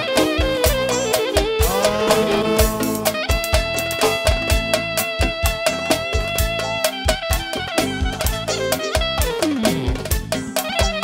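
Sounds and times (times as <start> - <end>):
fast dance music: 0.0 - 11.0.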